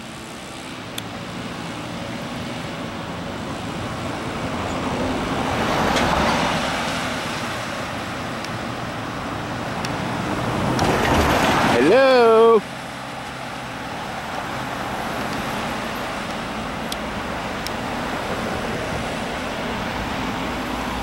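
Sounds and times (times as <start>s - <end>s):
vehicle passing on road: 0.0s - 21.0s.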